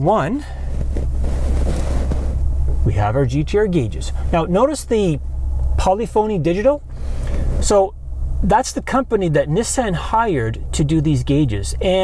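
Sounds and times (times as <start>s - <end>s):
low hum inside car cabin: 0.0s - 12.0s.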